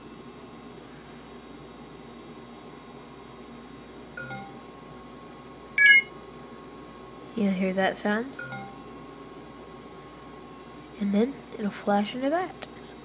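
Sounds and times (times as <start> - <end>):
short electronic beeps: 5.8 - 6.1.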